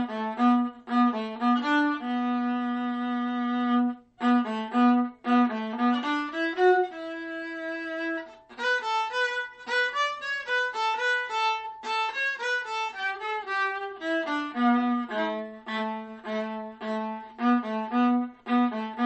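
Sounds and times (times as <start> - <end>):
solo viola melody: 0.0 - 19.0.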